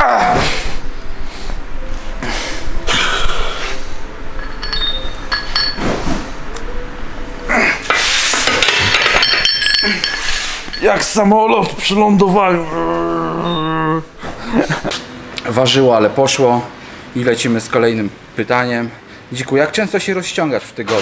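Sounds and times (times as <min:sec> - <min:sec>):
steel plates and bar clanking: 0:04.4 - 0:06.0, 0:07.9 - 0:11.2.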